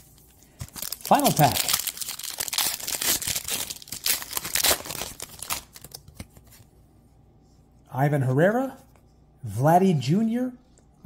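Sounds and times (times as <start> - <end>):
plastic wrapper tearing and crinkling: 0.0 - 6.2.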